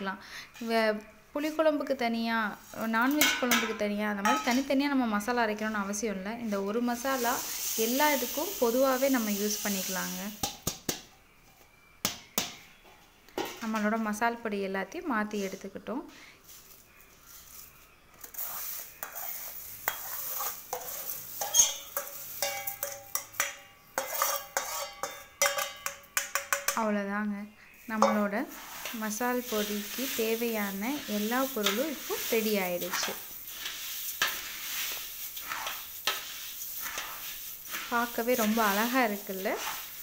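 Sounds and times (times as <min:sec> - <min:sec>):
dry spices stirred in metal pot: 0:00.5 - 0:10.8, 0:15.0 - 0:27.0, 0:27.7 - 0:40.0
steel spoon scraping pan: 0:02.6 - 0:04.8, 0:16.4 - 0:26.8, 0:27.8 - 0:40.0.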